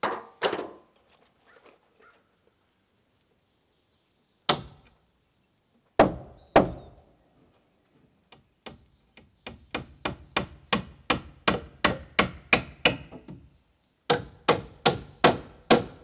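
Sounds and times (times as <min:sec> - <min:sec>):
insect chirping: 0:00.0 - 0:16.0
hammer striking wood: 0:04.5 - 0:04.8, 0:06.0 - 0:06.9, 0:08.6 - 0:13.4, 0:14.1 - 0:16.0.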